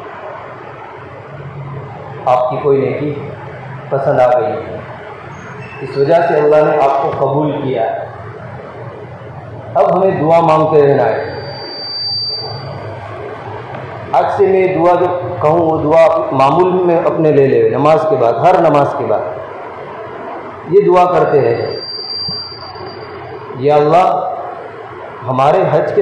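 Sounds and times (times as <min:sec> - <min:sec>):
steady background noise: 0:00.0 - 0:26.0
faint high whistle: 0:11.2 - 0:12.8, 0:21.4 - 0:23.3.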